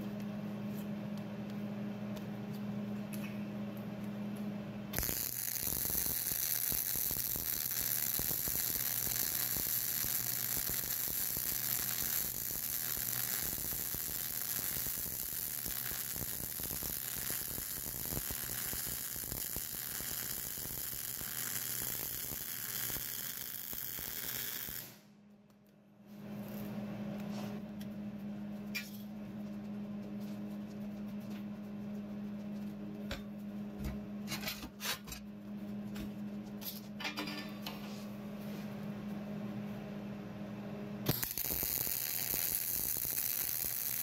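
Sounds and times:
welding arc crackling sizzle: 0:05.0 - 0:25.1, 0:41.1 - 0:44.0.

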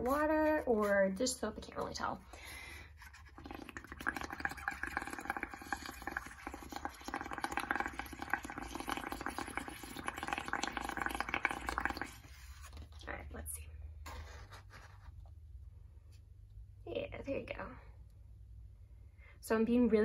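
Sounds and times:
bubbling and crackling foam: 0:00.0 - 0:13.2.

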